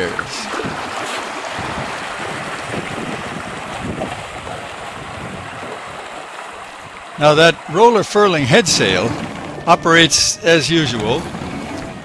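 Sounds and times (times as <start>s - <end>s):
wind noise on microphone: 0.0s - 7.0s, 8.5s - 12.0s
water rushing along a hull: 0.0s - 12.0s.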